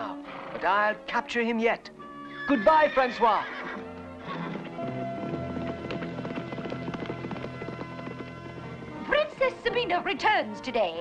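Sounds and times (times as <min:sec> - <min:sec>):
orchestral background music: 0:00.0 - 0:11.0
galloping horse hoofbeats: 0:02.6 - 0:10.4.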